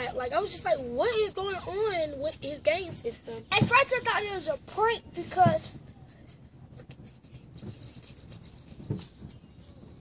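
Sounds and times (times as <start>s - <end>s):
faint bird chirps: 7.1s - 10.0s.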